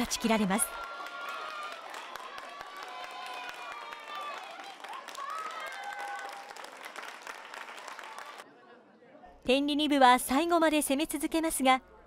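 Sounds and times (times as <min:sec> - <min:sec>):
spectators clapping: 0:00.0 - 0:08.4.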